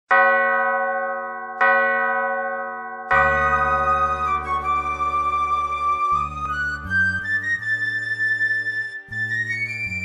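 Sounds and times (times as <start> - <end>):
bell ringing: 0.1 - 4.4.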